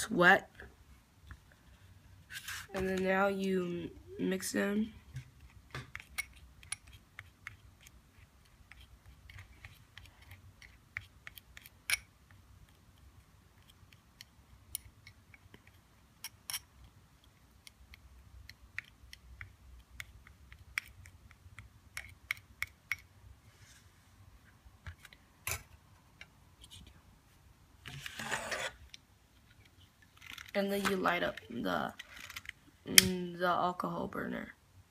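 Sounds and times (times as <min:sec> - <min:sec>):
rustling scrape: 0:02.3 - 0:02.8, 0:23.4 - 0:24.2, 0:27.9 - 0:28.8.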